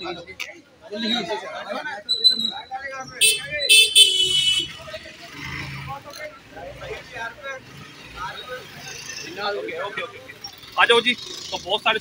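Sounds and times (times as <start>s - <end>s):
scattered voices: 0.0s - 12.0s
street traffic noise: 0.0s - 12.0s
high-pitched vehicle horn honking: 3.2s - 4.8s.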